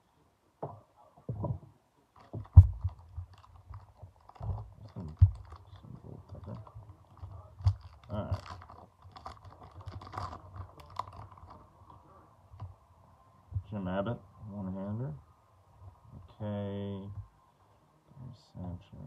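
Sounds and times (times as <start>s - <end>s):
wrapper crinkling and tearing: 2.2s - 11.7s.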